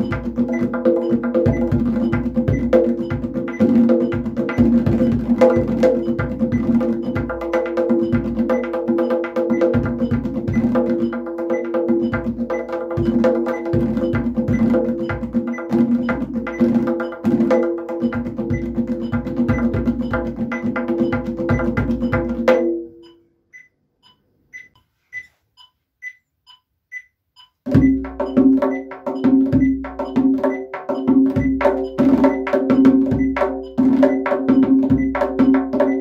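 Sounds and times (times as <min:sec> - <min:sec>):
goblet drum played with fingers: 0:00.0 - 0:23.0, 0:27.7 - 0:36.0
metronome beeps: 0:00.0 - 0:36.0.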